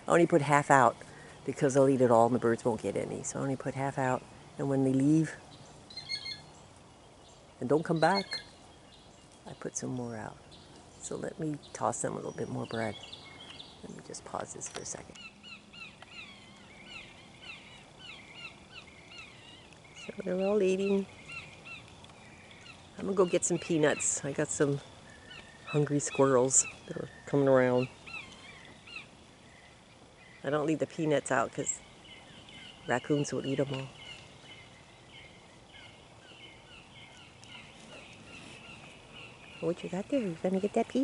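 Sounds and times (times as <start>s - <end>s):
faint chirping calls: 3.3s - 41.0s
short high chirping calls: 5.9s - 6.6s.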